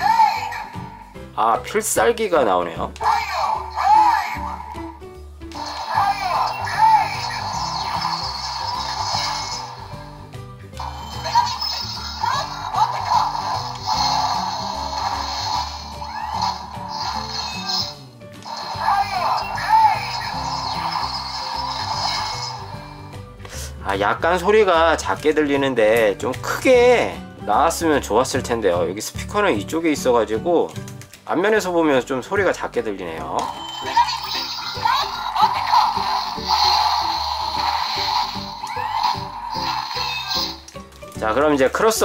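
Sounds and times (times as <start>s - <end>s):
toy robot electronic sounds: 5.6s - 10.0s, 10.8s - 23.1s, 33.4s - 40.8s.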